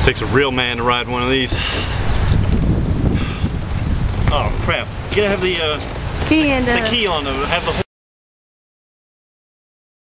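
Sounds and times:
wind buffeting microphone: 0:00.0 - 0:07.6.

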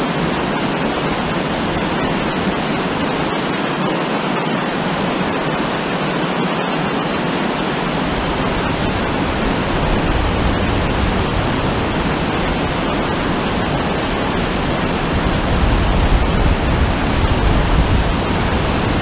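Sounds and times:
waterfall rushing and splashing: 0:00.0 - 0:19.0.

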